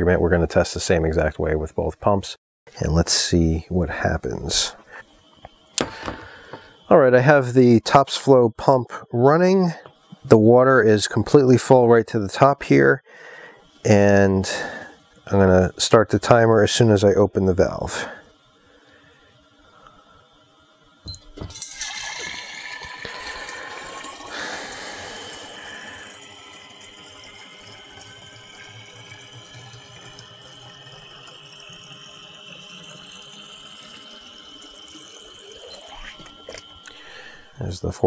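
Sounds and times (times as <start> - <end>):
pump click: 5.4 - 6.7, 21.1 - 24.3
water pouring into glass jug: 21.5 - 37.6.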